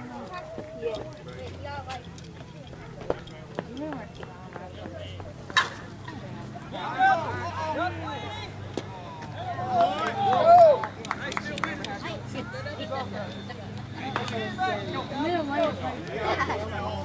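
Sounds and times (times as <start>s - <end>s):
players' voices: 0.0s - 17.0s
bat striking ball: 5.5s - 5.8s
people shouting: 9.4s - 10.8s.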